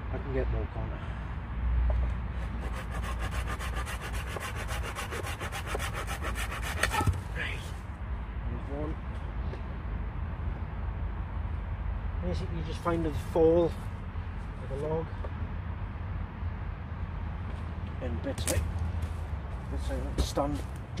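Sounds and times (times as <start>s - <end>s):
hand saw cutting branch: 2.4s - 7.2s.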